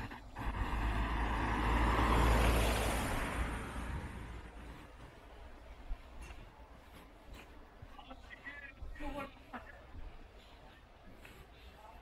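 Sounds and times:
car driving past: 0:00.0 - 0:05.0.

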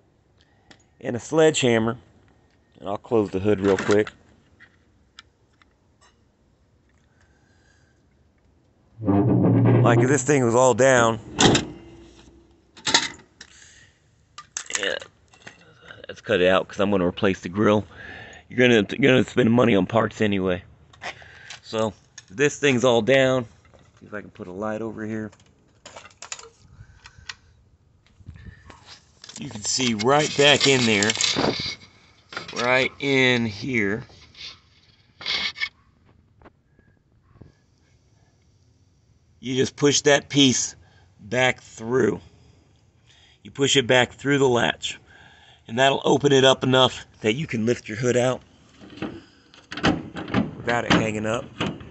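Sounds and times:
hand scraping metal parts: 0:09.0 - 0:13.2, 0:28.7 - 0:35.7
latch click: 0:11.2 - 0:11.9.

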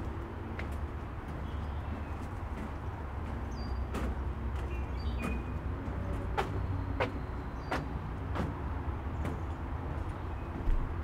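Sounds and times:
footsteps on wooden boards: 0:00.0 - 0:11.0.

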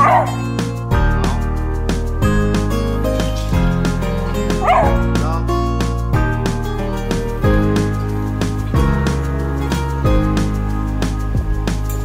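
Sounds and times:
dog barking: 0:00.0 - 0:00.5, 0:04.6 - 0:05.0
upbeat background music: 0:00.0 - 0:12.0.

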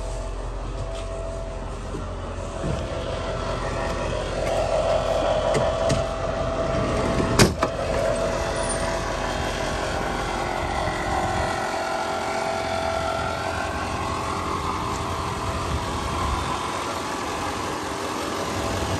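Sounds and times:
truck engine idling: 0:00.0 - 0:18.9
truck door slamming shut: 0:07.3 - 0:07.7.

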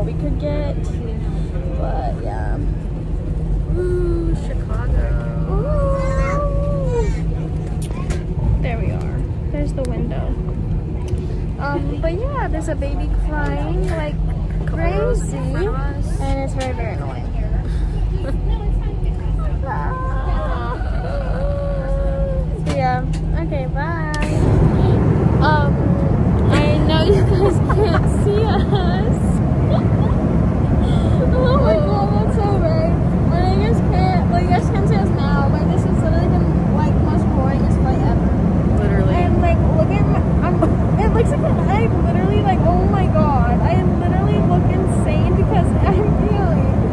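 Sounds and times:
airplane cabin drone: 0:00.0 - 0:46.9
voices talking: 0:00.0 - 0:46.9.

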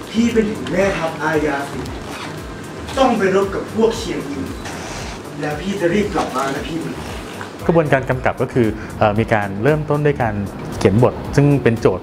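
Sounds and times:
young man speaking: 0:00.0 - 0:02.1, 0:02.8 - 0:12.0.

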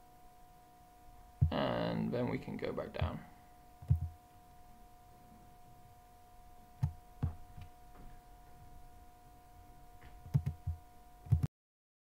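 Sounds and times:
faint electrical hum: 0:00.0 - 0:11.5
soft low thumps: 0:01.4 - 0:01.6, 0:03.8 - 0:04.2.

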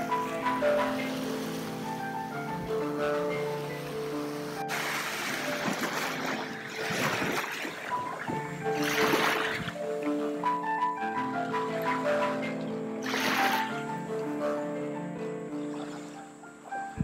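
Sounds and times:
small waves breaking on sand: 0:00.0 - 0:09.8, 0:13.0 - 0:13.8
slow solo piano: 0:00.0 - 0:17.0.

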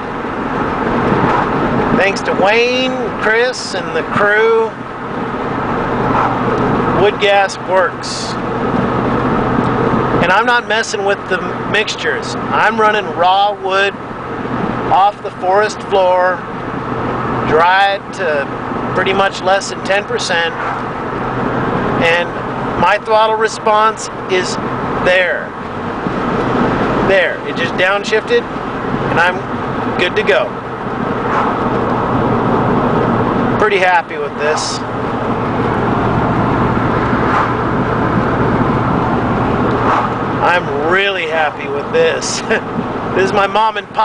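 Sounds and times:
engine and road noise in cab: 0:00.0 - 0:44.0.

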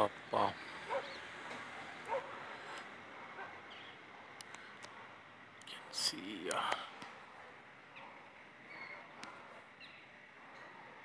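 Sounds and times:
faint higher animal calls: 0:08.7 - 0:10.9.

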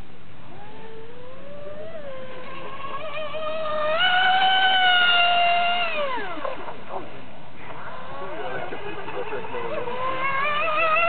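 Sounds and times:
model speedboat motor whining: 0:00.5 - 0:11.0.

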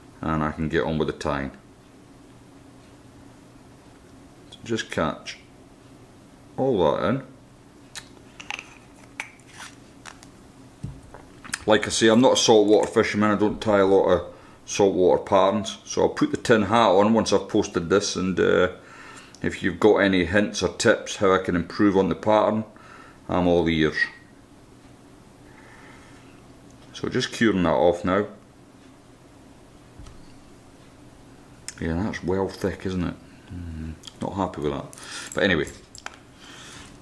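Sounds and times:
faint steady hiss: 0:00.0 - 0:37.0.

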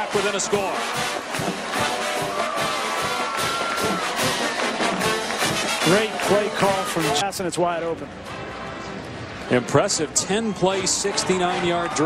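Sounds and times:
crowd noise: 0:00.0 - 0:12.0
stadium band music: 0:00.0 - 0:12.0.

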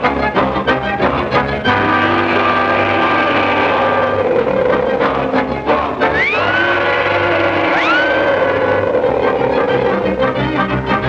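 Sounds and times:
low drone: 0:00.0 - 0:11.0
orchestral sustained chord: 0:01.6 - 0:11.0.

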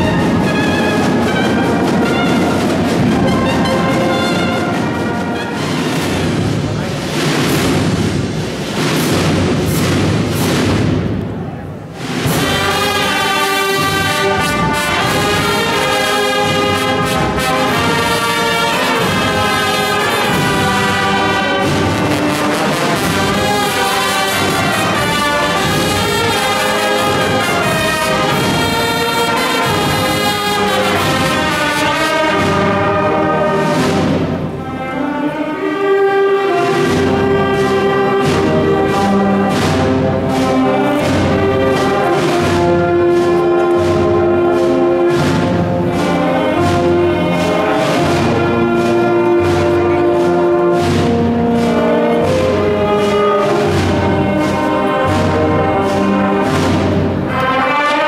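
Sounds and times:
brass band playing a march: 0:00.0 - 0:58.0.

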